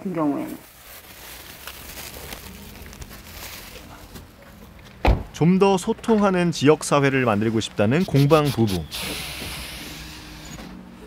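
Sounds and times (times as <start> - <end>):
passing vehicle hiss: 7.9 - 11.0.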